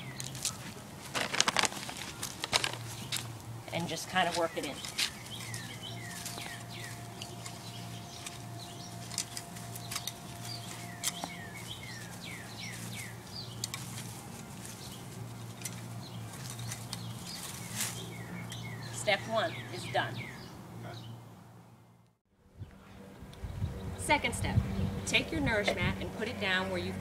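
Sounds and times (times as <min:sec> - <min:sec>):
garden hoe scraping soil: 0:00.0 - 0:18.2
small birds chirping: 0:00.0 - 0:21.3.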